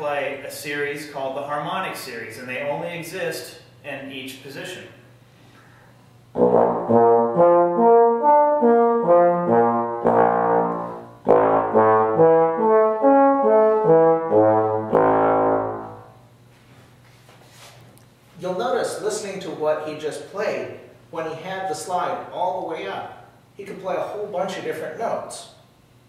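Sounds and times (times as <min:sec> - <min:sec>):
trombone playing harmonic notes: 0:06.4 - 0:16.2.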